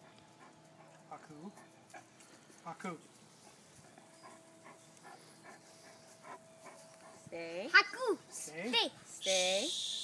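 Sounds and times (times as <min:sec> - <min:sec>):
dog panting: 0:00.0 - 0:07.6.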